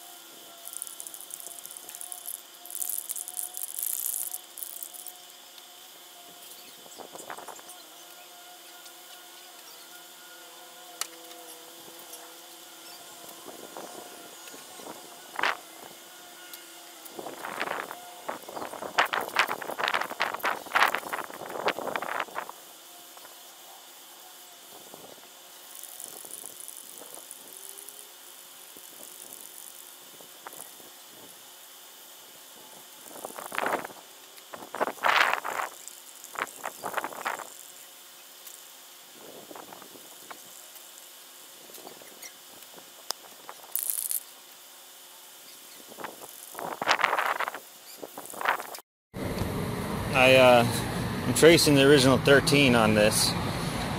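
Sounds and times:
masking tape pulled off roll: 0.5 - 5.7, 25.6 - 31.0, 41.6 - 44.3.

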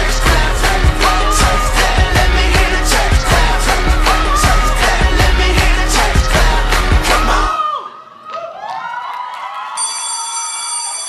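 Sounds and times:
dance music with heavy bass: 0.0 - 7.5
audience cheering and whooping: 7.1 - 10.6.

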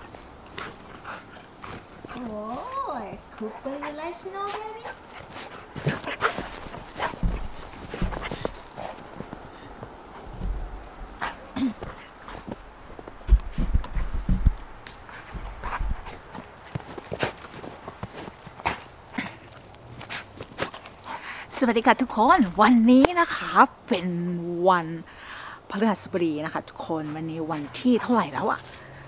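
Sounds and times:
low thumps: 5.8 - 16.1.

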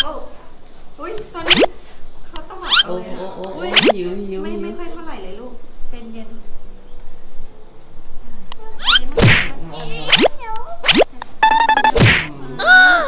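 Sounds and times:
loud whack-like sweep: 1.5 - 1.7, 3.7 - 4.0, 8.9 - 12.4.

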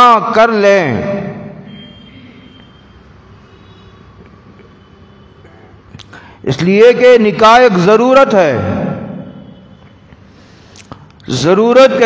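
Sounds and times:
man's voice in reverberant room: 0.0 - 1.7, 6.0 - 9.5, 11.0 - 12.0.

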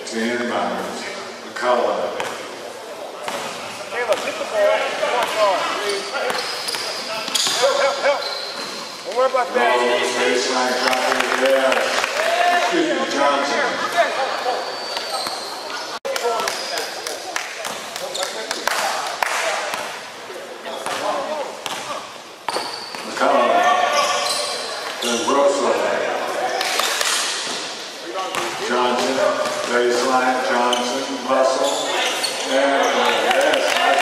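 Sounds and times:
players shouting and talking: 1.8 - 34.0.

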